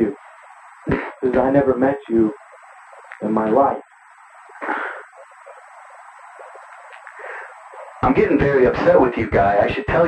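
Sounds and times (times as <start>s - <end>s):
telephone line hiss: 0.0s - 10.0s
thin steady high whine: 0.0s - 10.0s.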